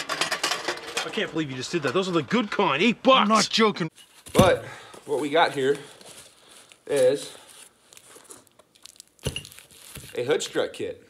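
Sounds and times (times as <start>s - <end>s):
cardboard and plastic rustling: 4.2s - 10.4s.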